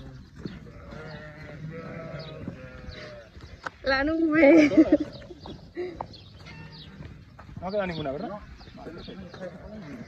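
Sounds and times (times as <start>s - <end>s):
sheep bleating: 0.5s - 3.4s.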